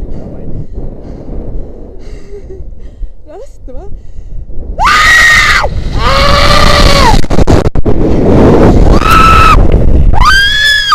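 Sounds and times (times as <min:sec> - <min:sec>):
person breathing fearfully: 0:00.0 - 0:03.2, 0:03.9 - 0:04.6
wind rumbling on microphone: 0:00.0 - 0:10.9.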